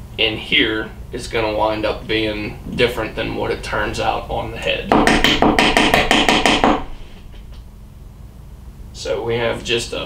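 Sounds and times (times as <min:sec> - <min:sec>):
rapid knocks on bench: 0:04.9 - 0:07.6.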